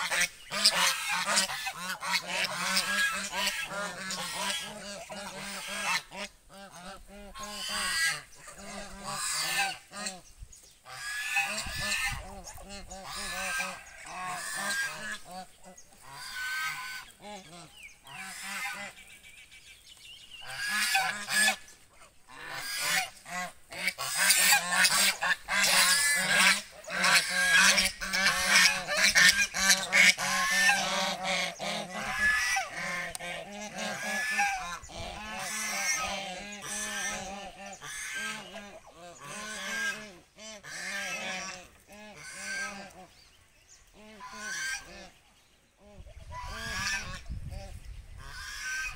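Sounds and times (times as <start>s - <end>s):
geese honking: 0.0s - 19.2s, 20.4s - 43.2s, 43.8s - 45.2s, 45.8s - 48.9s.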